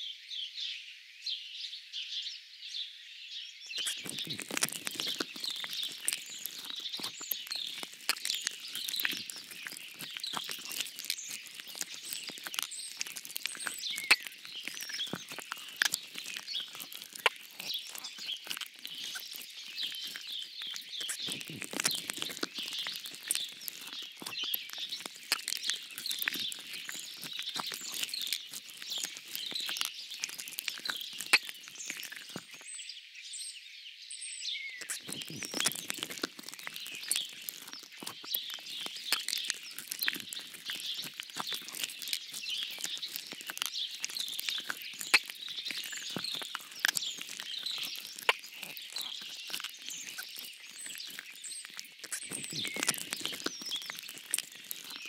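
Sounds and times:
small birds chirping and singing: 0.0 - 55.0
dense crackle of clicks: 3.8 - 32.7, 34.8 - 55.0.

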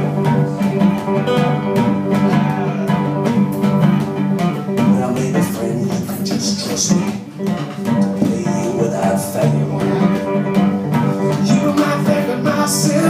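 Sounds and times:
person singing: 0.0 - 3.6, 4.6 - 13.0
acoustic blues guitar: 0.0 - 13.0.

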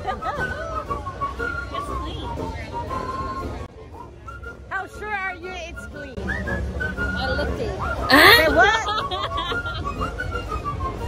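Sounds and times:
background chatter: 0.0 - 11.0
whistled melody: 0.0 - 11.0.

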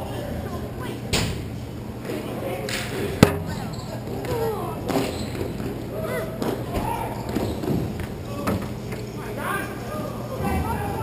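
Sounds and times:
players shouting: 5.8 - 7.6, 8.2 - 11.0.

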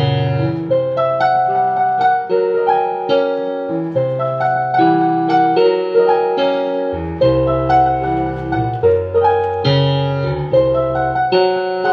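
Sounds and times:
slow piano piece: 0.0 - 11.9.

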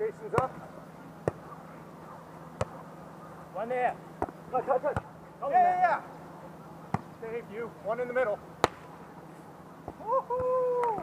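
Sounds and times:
volleyball hand slaps: 8.6 - 8.9.

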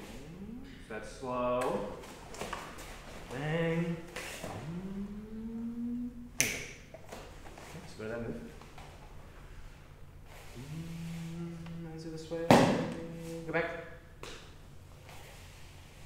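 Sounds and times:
sharp slap or clap: 6.4 - 6.8.

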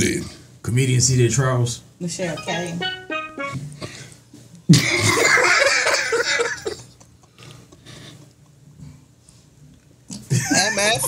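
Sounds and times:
group of people laughing: 4.7 - 7.9, 10.3 - 11.0.

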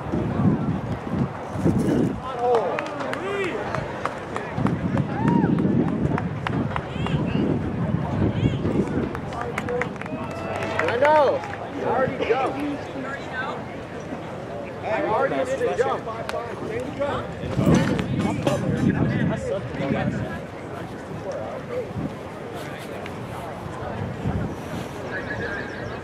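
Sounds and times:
people talking indistinctly: 5.8 - 26.0.

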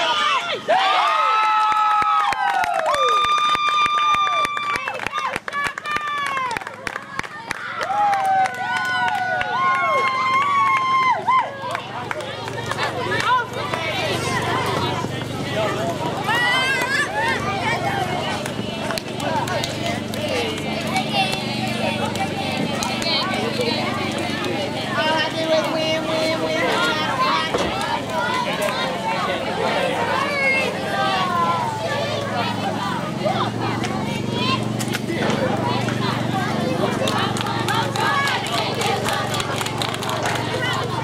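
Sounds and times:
girls talking over one another: 10.2 - 41.0.

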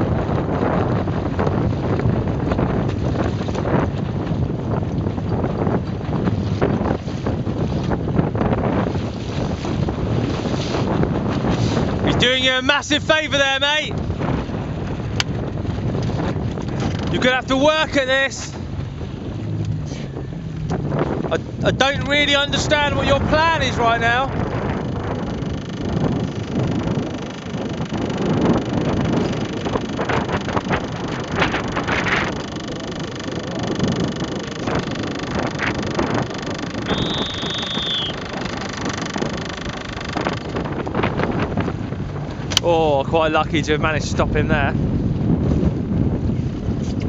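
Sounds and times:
outboard motor running: 0.0 - 47.0
water slapping around boat: 0.0 - 47.0
wind buffeting microphone: 0.0 - 47.0
high whistle-like tone: 36.8 - 38.2.

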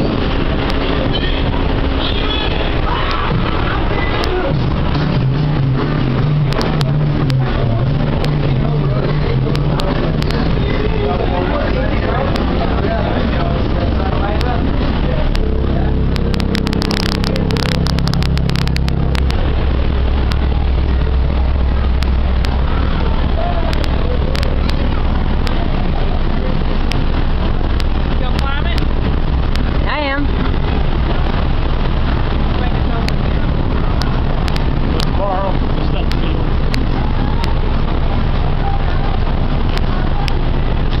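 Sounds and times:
people's voices: 0.0 - 41.0
wind buffeting microphone: 0.0 - 41.0.

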